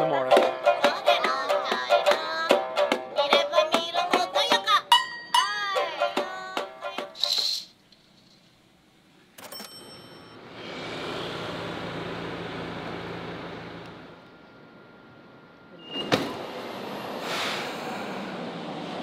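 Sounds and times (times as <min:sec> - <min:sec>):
subway train pulling in: 0:10.4 - 0:19.0.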